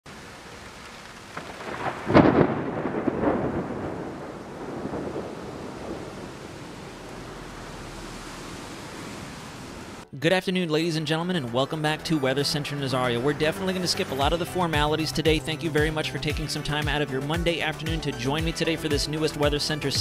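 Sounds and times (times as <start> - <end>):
rain hissing: 0.1 - 10.1, 11.7 - 16.6
thunder crack and rumble: 1.1 - 10.0.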